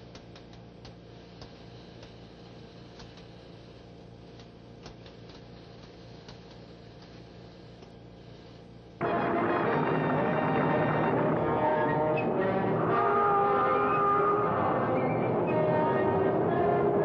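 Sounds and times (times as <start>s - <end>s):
radio hiss: 5.6s - 17.0s
low hum: 9.0s - 17.0s.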